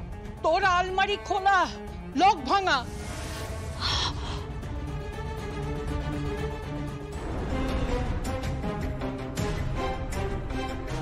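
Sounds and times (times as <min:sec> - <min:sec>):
dramatic background music: 0:00.0 - 0:11.0
breathy rush: 0:03.0 - 0:04.8.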